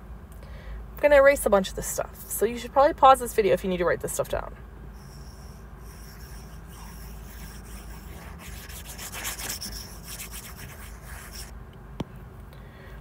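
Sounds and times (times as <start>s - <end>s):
stylus scrubbing on tablet screen: 5.0s - 11.5s.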